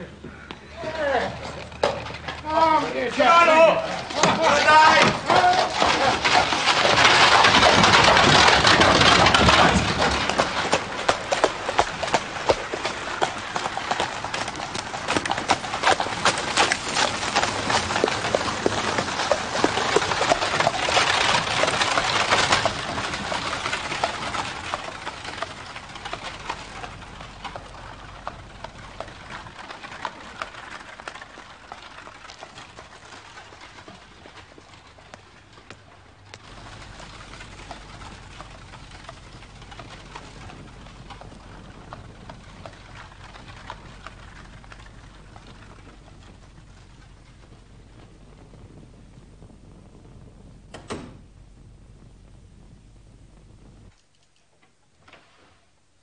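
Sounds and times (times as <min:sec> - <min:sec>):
carriage wheels crunching on gravel: 0:00.0 - 0:54.1
horse hooves clip-clopping: 0:00.0 - 0:55.4
low hum: 0:05.2 - 0:54.4.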